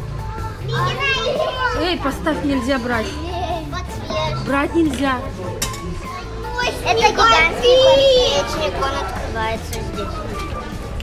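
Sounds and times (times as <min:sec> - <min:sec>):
background music: 0:00.0 - 0:11.0
young children chattering: 0:00.0 - 0:11.0.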